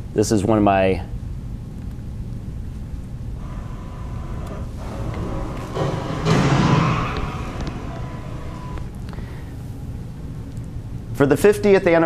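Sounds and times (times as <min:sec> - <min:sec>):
car crash metal crunch: 0:04.8 - 0:08.8.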